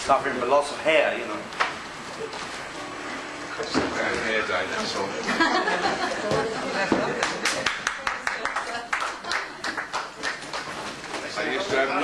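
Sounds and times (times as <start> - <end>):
small audience clapping: 7.1 - 11.4.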